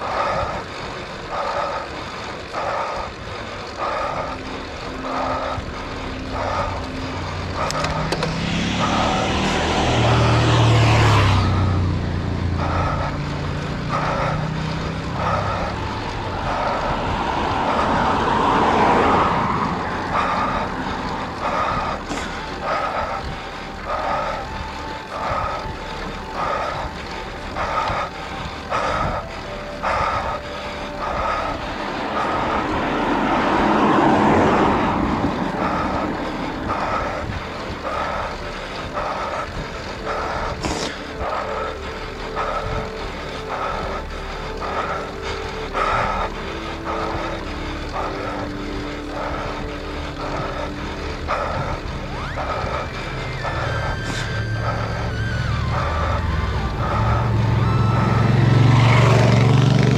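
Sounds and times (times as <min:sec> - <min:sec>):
heavy rhythmic breathing: 0:00.0 - 0:59.9
wind and road noise: 0:00.0 - 0:59.9.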